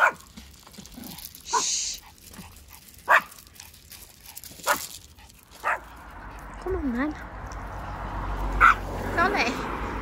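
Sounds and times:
dog barking: 0:00.0 - 0:00.3, 0:01.5 - 0:01.8, 0:03.0 - 0:03.4, 0:04.6 - 0:04.9, 0:05.6 - 0:05.9, 0:08.6 - 0:08.9.

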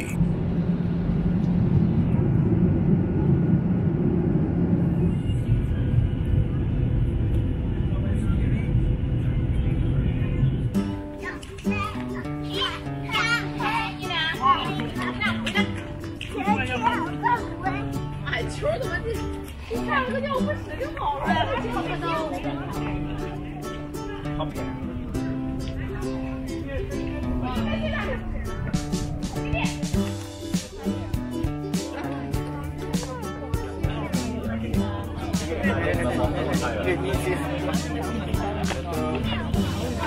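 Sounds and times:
airliner cabin engine rumble: 0:00.0 - 0:11.7, 0:18.6 - 0:40.0
people chattering: 0:00.0 - 0:40.0
background music of held notes: 0:10.7 - 0:40.0.

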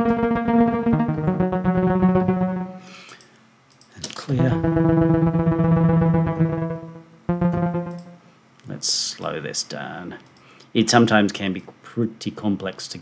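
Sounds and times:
fluttering synthesizer notes: 0:00.0 - 0:02.9, 0:04.4 - 0:08.3.

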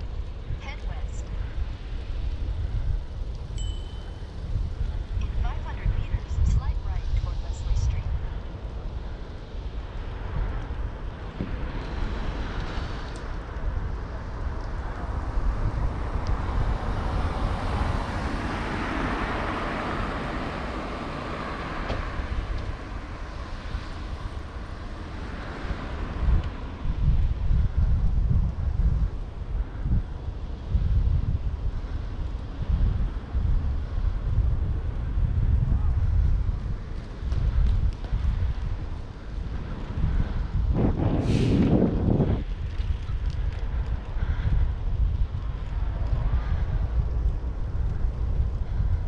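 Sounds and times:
wind buffeting microphone: 0:00.0 - 0:49.0
car passing by: 0:09.0 - 0:27.4, 0:36.7 - 0:44.6.

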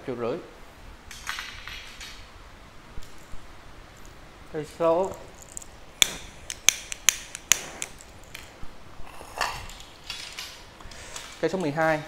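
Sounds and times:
fishing rods clicking and knocking: 0:05.0 - 0:08.5.

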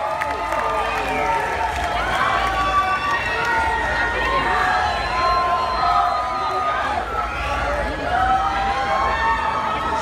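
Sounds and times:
crowd cheering and shouting: 0:00.0 - 0:10.0.

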